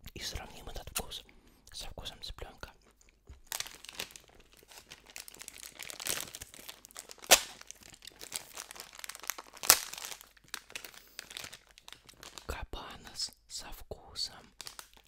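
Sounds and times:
plastic wrapper snapping: 3.3 - 12.5, 14.6 - 15.0
plastic wrapper crinkling: 3.3 - 12.6, 14.5 - 15.0.

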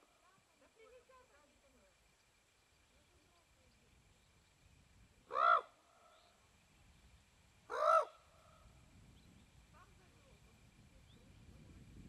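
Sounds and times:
crane calling: 5.3 - 6.4, 7.7 - 8.6.

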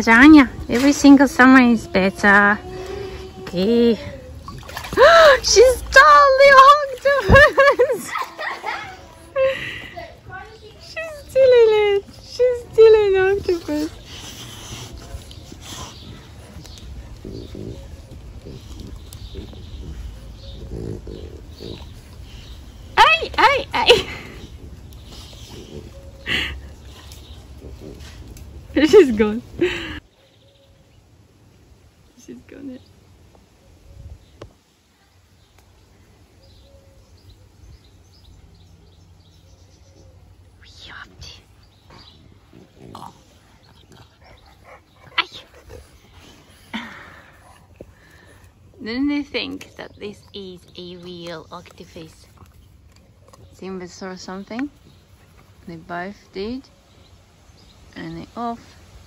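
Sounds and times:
dog breathing noisily: 13.6 - 23.0.

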